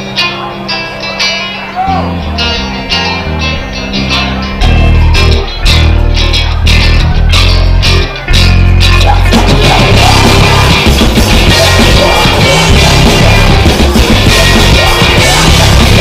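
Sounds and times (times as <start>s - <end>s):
electric guitar riff: 0.0s - 16.0s
punk-rock band playing: 0.0s - 16.0s.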